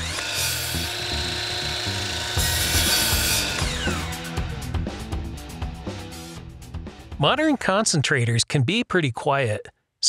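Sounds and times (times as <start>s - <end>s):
circular saw cutting wood: 0.0s - 4.5s.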